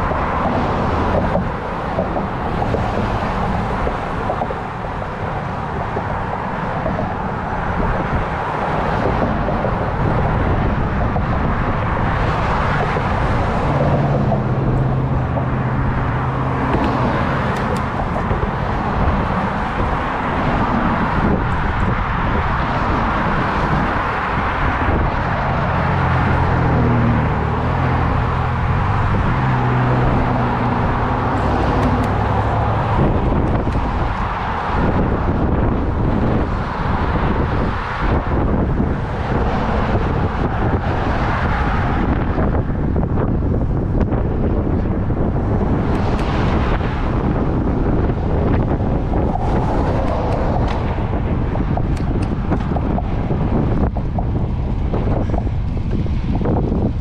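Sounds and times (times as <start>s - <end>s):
car traffic passing: 0.0s - 57.0s
vehicle engine and tyre hum: 0.0s - 57.0s
wind rushing over microphone: 0.0s - 57.0s.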